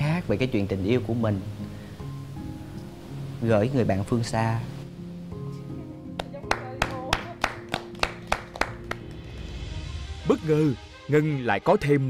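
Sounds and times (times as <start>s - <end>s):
soft background music: 0.0s - 12.0s
hands clapping in even beat: 6.2s - 9.6s.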